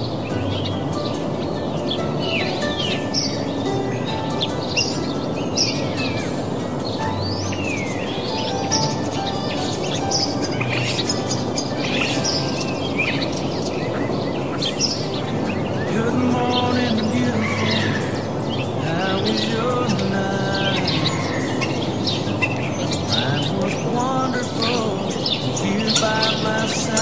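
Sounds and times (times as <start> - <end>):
birds chirping and whistling: 0.0 - 27.0
soft instrumental music: 0.0 - 27.0.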